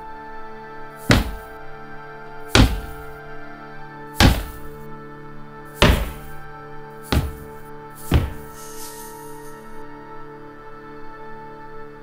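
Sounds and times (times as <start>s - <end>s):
sustained film score chord: 0.0s - 12.0s
heavy footsteps on wooden stairs: 1.1s - 1.5s, 2.6s - 3.1s, 4.2s - 4.7s, 5.8s - 6.4s, 7.1s - 9.0s.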